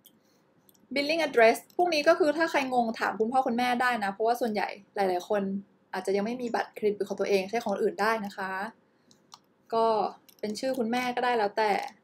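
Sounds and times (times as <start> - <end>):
computer mouse clicks: 0.0 - 2.0, 7.6 - 8.4, 9.0 - 9.6, 10.2 - 12.0
woman speaking: 0.9 - 8.8, 9.7 - 12.0.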